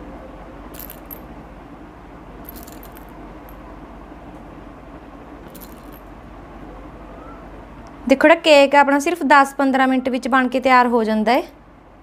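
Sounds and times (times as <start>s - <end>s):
low background hum: 0.0s - 12.0s
bangles jingling: 0.8s - 1.3s, 2.5s - 3.6s, 5.5s - 6.1s.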